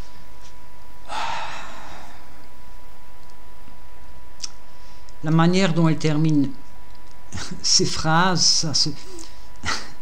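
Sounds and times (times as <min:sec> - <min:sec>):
man exhaling: 0:01.0 - 0:02.4.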